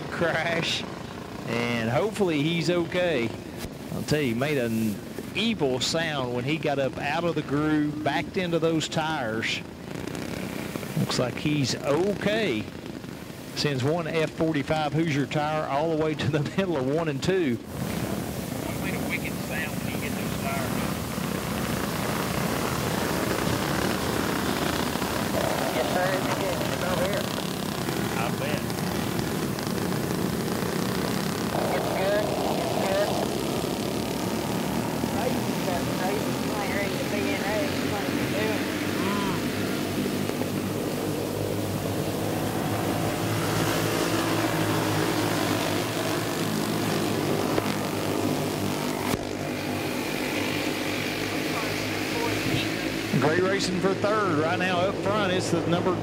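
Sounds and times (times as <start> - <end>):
go-kart engines racing: 0.0 - 56.0.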